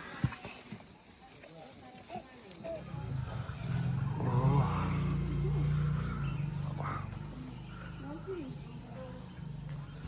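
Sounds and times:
engine humming: 0:02.6 - 0:10.0.

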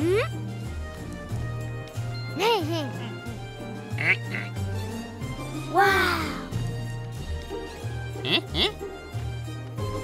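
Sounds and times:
light cartoon music: 0:00.0 - 0:10.0.

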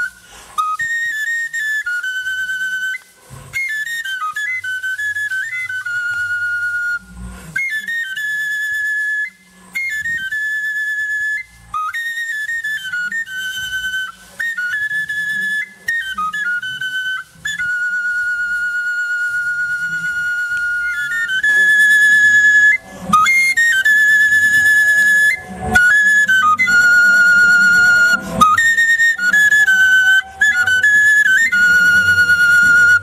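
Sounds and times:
solo wind instrument melody: 0:00.0 - 0:33.0
soft low accompaniment: 0:19.4 - 0:33.0.

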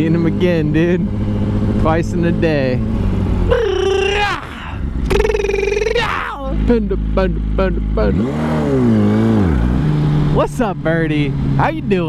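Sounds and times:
motorcycle engine running: 0:00.0 - 0:12.0
wavering voice-like call: 0:03.5 - 0:06.3.

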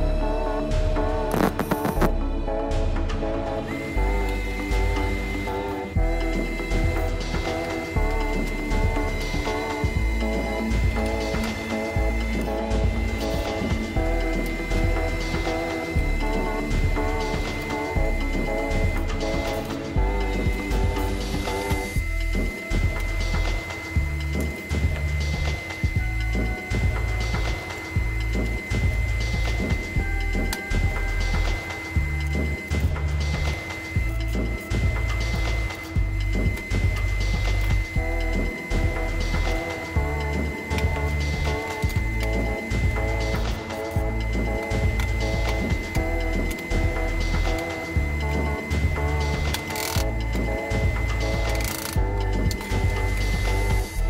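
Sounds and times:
background music with steady beat: 0:00.0 - 0:54.0
melody: 0:00.0 - 0:54.0
repeating bass line: 0:00.0 - 0:54.0.

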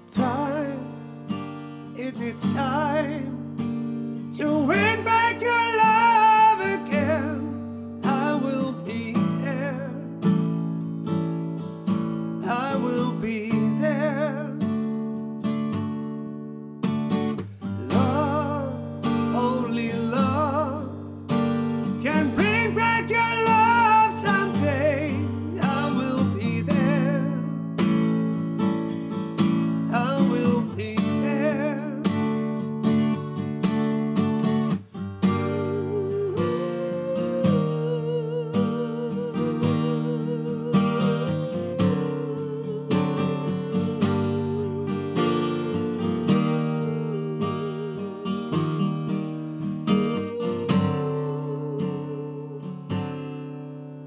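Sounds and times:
man singing a slow ballad: 0:00.0 - 0:01.0, 0:01.9 - 0:03.6, 0:04.2 - 0:10.4, 0:12.4 - 0:14.8, 0:17.7 - 0:21.1, 0:21.8 - 0:28.0, 0:29.8 - 0:33.3, 0:35.4 - 0:48.9, 0:49.9 - 0:52.8
acoustic guitar strumming chords: 0:00.0 - 0:54.0.

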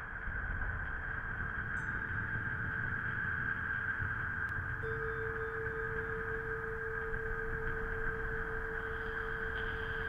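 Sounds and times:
synthesized windy hiss: 0:00.0 - 0:10.0
faint held hum: 0:01.3 - 0:10.0.

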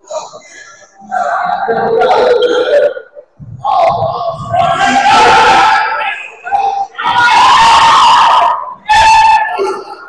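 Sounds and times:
people yelling in a gym: 0:00.0 - 0:10.0.

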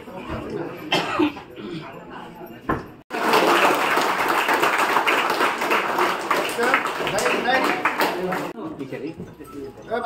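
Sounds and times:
short cough: 0:00.9 - 0:01.9.

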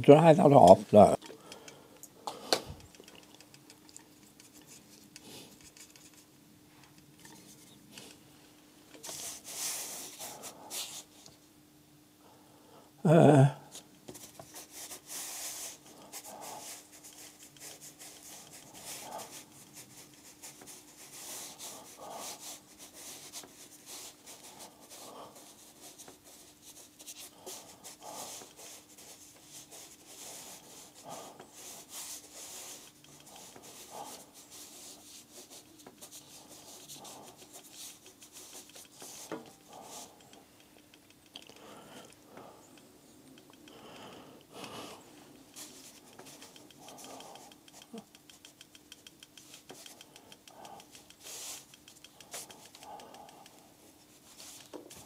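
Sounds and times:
faint steady hum: 0:00.0 - 0:55.0
paintbrush scrubbing on paper: 0:04.2 - 0:06.3, 0:09.0 - 0:11.2, 0:14.2 - 0:40.2, 0:45.6 - 0:48.6, 0:50.6 - 0:53.0, 0:54.0 - 0:55.0.

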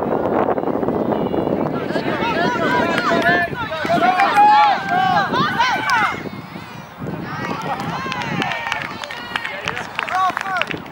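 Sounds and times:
voices shouting and calling out: 0:00.6 - 0:10.9.

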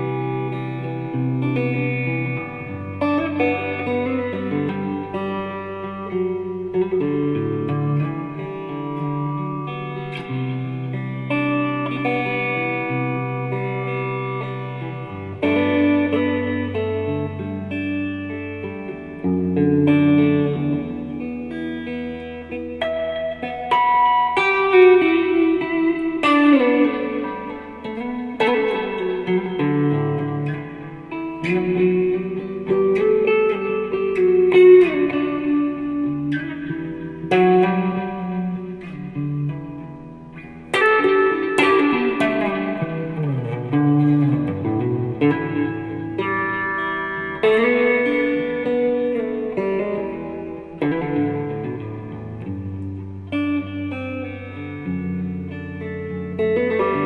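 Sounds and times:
electric guitar through amplifier: 0:00.0 - 0:57.0.

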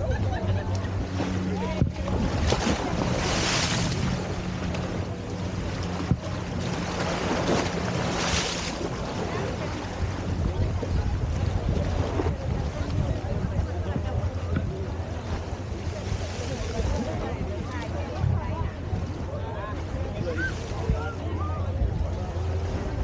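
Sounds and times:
steady low hum: 0:00.0 - 0:23.0
water splashing against seawall: 0:00.0 - 0:23.0
wind buffeting microphone: 0:00.0 - 0:23.0.

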